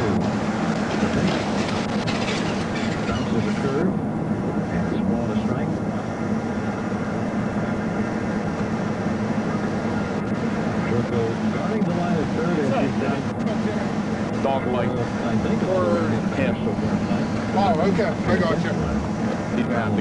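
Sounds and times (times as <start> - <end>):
car interior hum and rumble: 0.0 - 20.0.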